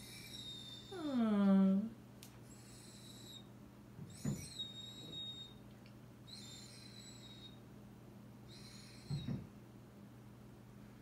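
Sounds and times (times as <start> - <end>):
dog whining: 0.0 - 1.8, 2.4 - 5.6, 6.2 - 7.6, 8.4 - 9.5.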